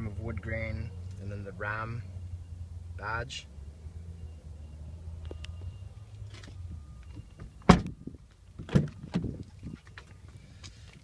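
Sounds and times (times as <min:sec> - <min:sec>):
truck door latch clunks: 0:07.1 - 0:08.0, 0:08.6 - 0:09.4.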